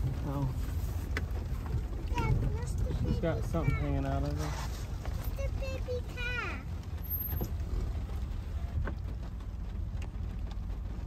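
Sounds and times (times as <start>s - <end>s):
pickup truck rumbling from inside: 0.0s - 11.0s.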